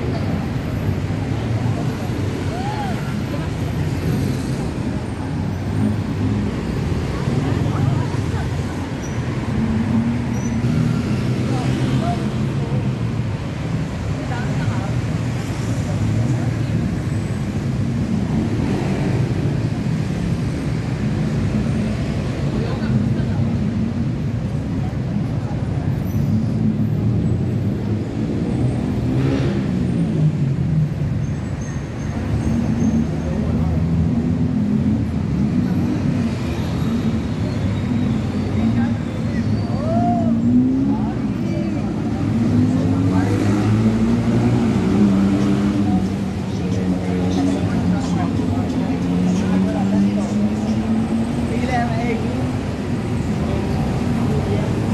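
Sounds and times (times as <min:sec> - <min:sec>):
indistinct pedestrian voices: 0:00.0 - 0:54.9
road traffic rumble: 0:00.0 - 0:54.9.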